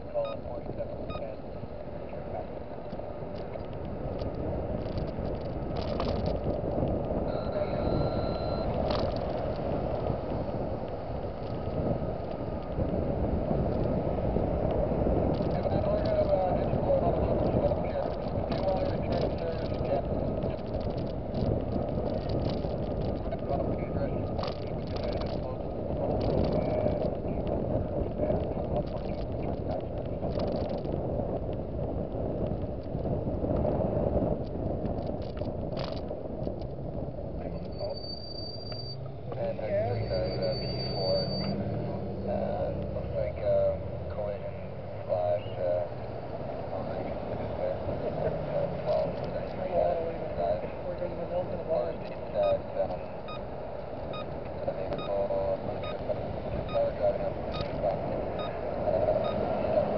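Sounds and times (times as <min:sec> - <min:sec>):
road and tyre noise: 0:00.0 - 0:59.9.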